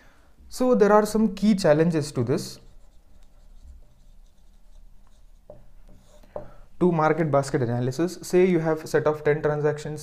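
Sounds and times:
marker pen writing on whiteboard: 2.1s - 6.6s.

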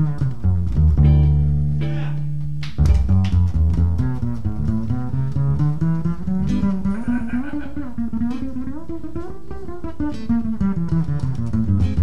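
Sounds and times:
jazz trio playing: 0.0s - 12.0s
lead guitar bending notes: 0.0s - 12.0s
plucked electric guitar lines: 0.0s - 12.0s
walking double bass: 0.0s - 12.0s.

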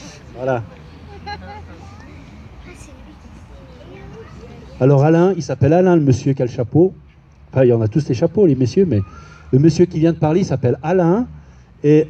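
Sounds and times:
distant people talking quietly: 0.0s - 12.0s.

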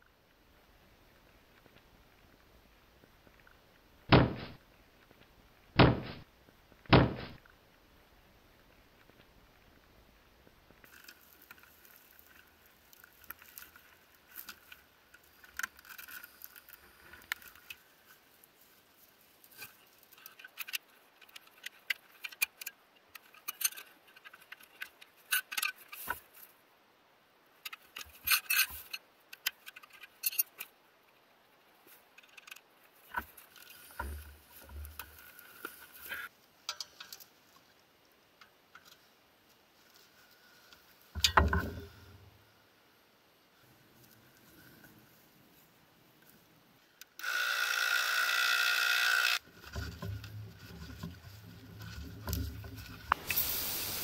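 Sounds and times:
loud thump: 4.1s - 4.6s, 5.8s - 6.2s, 6.9s - 7.4s.

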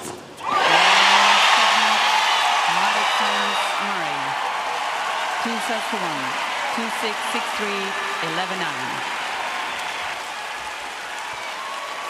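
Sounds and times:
stadium crowd cheering and applauding: 0.4s - 12.0s.

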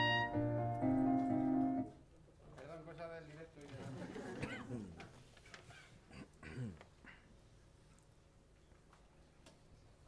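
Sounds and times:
reed woodwind: 0.0s - 1.9s
piano: 0.0s - 2.0s.

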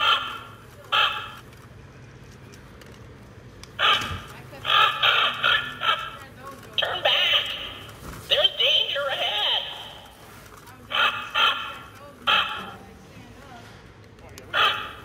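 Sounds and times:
tinny recorded voice from toy speaker: 6.8s - 10.1s.

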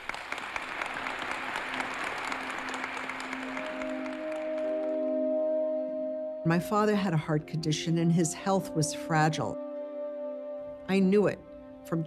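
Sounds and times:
audience applause: 0.0s - 5.2s
sustained film score music: 1.2s - 12.0s.

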